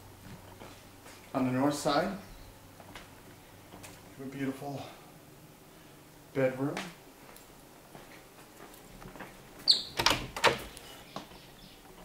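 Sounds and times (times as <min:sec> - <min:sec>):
door squeak: 0:09.6 - 0:10.8.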